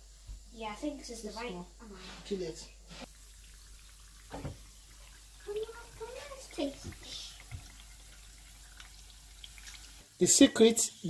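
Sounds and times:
dough frying in hot oil: 3.0 - 11.0.

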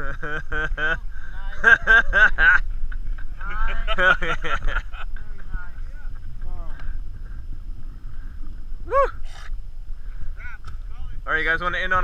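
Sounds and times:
faint laughter: 0.0 - 2.6
low rumble of wind and water: 0.0 - 12.0.

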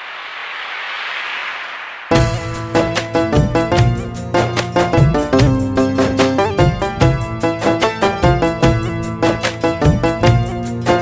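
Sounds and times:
riser sound effect: 0.0 - 7.2
song music: 2.1 - 11.0.

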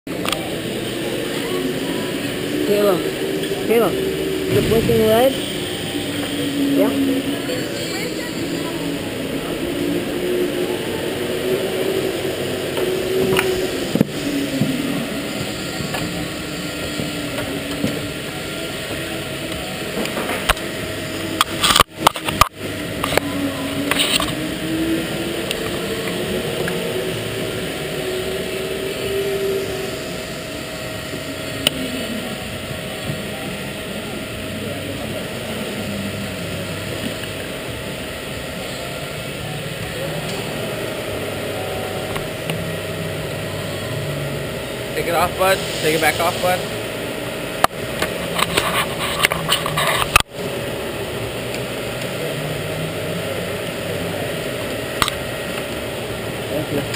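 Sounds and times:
voices in background: 0.1 - 21.0
go-karts engines droning: 0.1 - 56.9.

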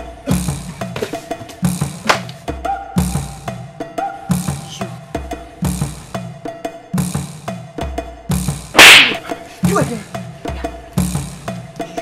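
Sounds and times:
dramatic film score: 0.0 - 12.0
drum and wood-block beat: 0.0 - 12.0
sharp whip-like swish: 8.8 - 9.4.

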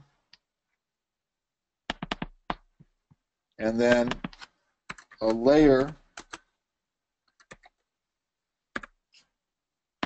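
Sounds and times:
computer keyboard keystrokes: 1.9 - 2.6, 3.9 - 5.4, 7.3 - 7.8, 8.8 - 9.0.

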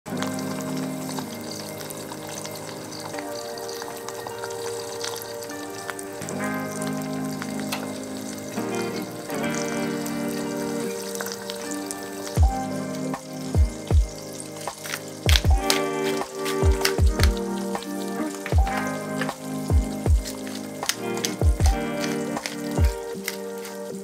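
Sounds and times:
egg sizzling in a skillet: 0.1 - 24.0
soft music of held chords: 0.1 - 24.0.

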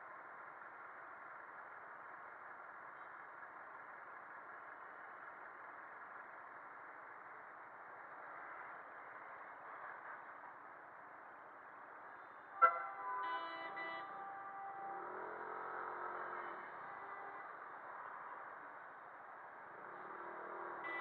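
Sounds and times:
road and wind noise: 0.0 - 21.0
vehicle horns honking: 12.5 - 17.6, 20.8 - 21.0.

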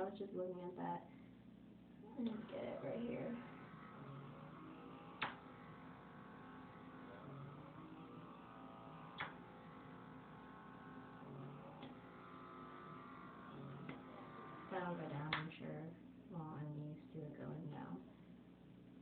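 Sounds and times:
small motor humming: 2.0 - 16.7
sharp clicks: 3.6 - 12.5, 15.0 - 15.6.

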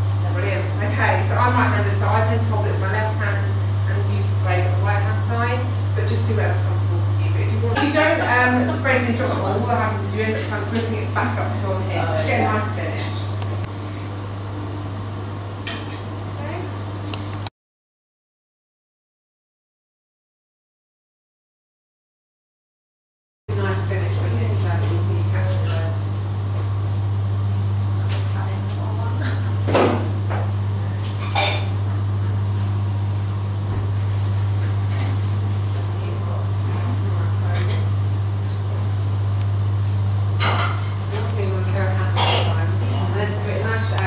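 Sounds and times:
machine humming: 0.0 - 17.5, 23.5 - 44.0.

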